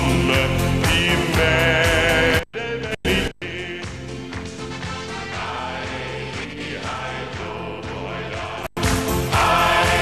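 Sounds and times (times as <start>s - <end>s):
group singing folk song: 0.0s - 10.0s.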